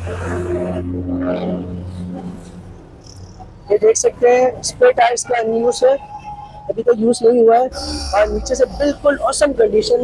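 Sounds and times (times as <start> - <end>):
person speaking: 7.7 - 10.0.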